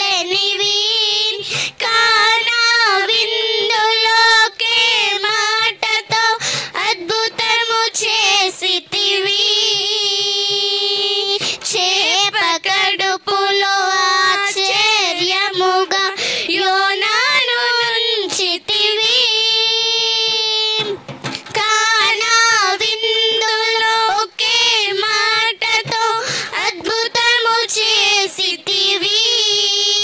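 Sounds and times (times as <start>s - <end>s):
girls singing a worship song: 0.0s - 30.0s.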